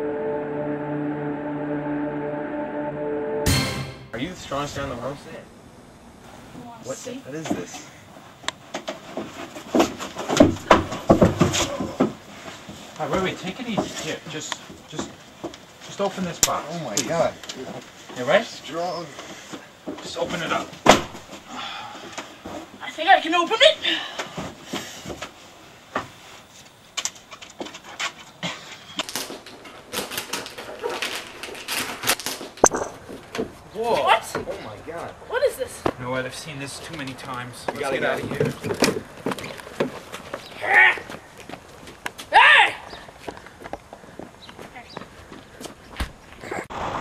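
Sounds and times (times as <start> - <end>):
thumps and scuffling: 8.6 - 15.9
knocks and rustles: 8.6 - 16.1
people grunting: 21.5 - 22.2, 40.6 - 41.1
wrapping paper crackling and tearing: 29.0 - 32.4.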